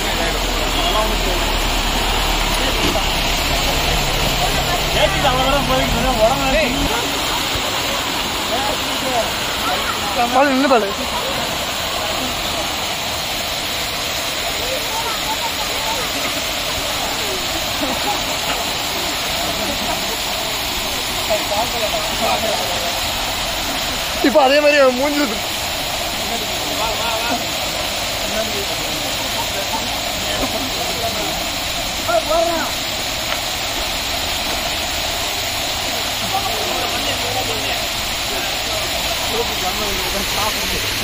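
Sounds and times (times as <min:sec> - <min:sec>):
small waterfall rushing: 0:00.0 - 0:41.0.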